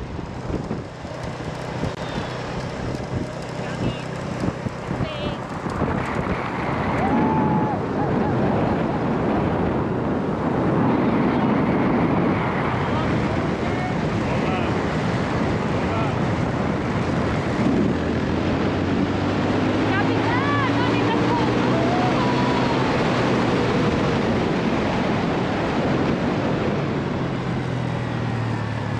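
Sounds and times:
motorcycle engine hum: 0.0s - 28.9s
road noise: 0.0s - 28.9s
wind buffeting microphone: 0.0s - 28.9s.

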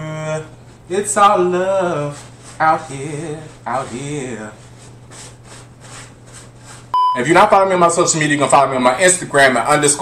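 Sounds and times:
electronic test tone beep: 7.0s - 7.3s.

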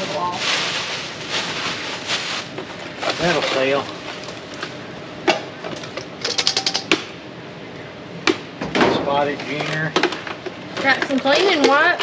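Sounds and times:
objects rattling in plastic crate: 0.0s - 3.9s.

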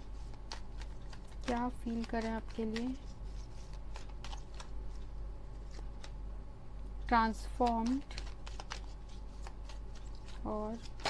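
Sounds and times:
cards being shuffled: 0.0s - 6.2s, 7.1s - 11.0s.

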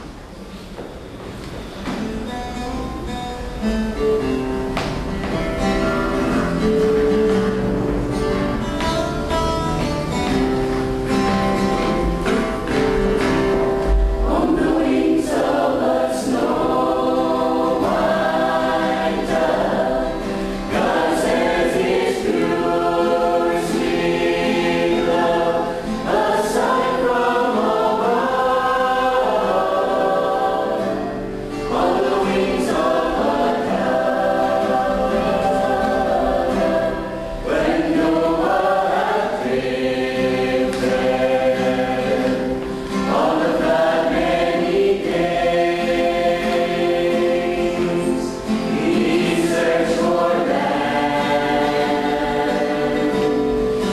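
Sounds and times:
mixed choir singing: 10.2s - 53.9s.

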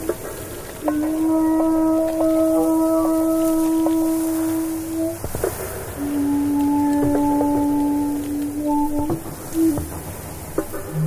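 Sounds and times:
low sustained drone: 0.0s - 11.0s.

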